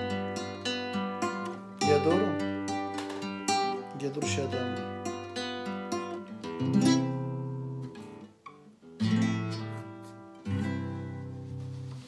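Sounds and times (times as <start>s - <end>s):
classical guitar chords: 0.0s - 12.0s.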